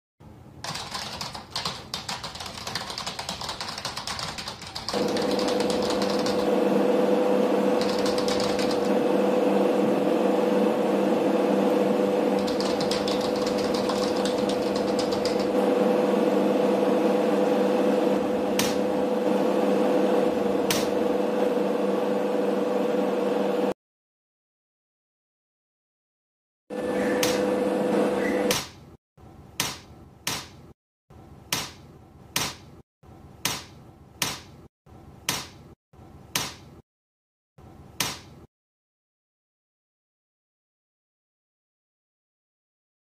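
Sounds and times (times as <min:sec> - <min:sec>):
computer keyboard typing: 0:00.6 - 0:06.5, 0:07.8 - 0:09.0, 0:12.4 - 0:15.6
machine hum with fast clatter: 0:00.7 - 0:09.9, 0:11.6 - 0:21.6.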